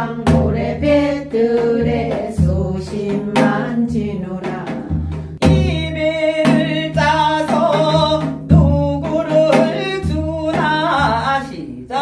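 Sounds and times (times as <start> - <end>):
woman singing folk song with vibrato: 0.0 - 5.4.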